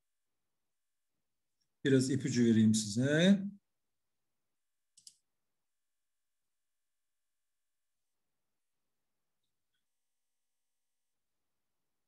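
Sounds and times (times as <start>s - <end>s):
computer mouse click: 4.9s - 5.2s.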